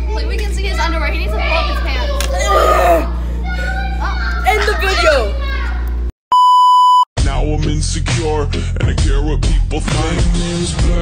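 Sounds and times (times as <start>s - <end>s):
girl talking: 0.0s - 5.9s
high-pitched censor beep: 6.3s - 7.1s
pop song with singing: 7.2s - 11.0s.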